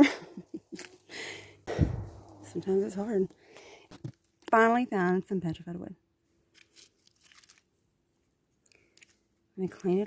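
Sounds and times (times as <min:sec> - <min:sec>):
crunching of dry leaves and gravel: 0:06.5 - 0:07.7.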